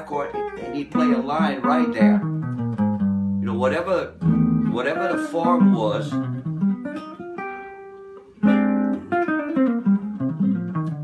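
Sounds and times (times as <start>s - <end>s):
solo jazz guitar: 0.0s - 11.0s.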